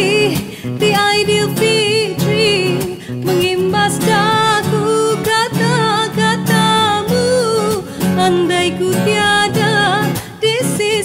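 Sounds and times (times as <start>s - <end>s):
acoustic guitar: 0.0s - 11.0s
woman singing with vibrato: 0.0s - 11.0s.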